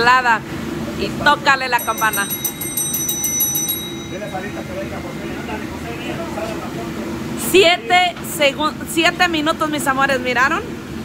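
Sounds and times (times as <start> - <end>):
service bell dinging: 1.6 - 8.1.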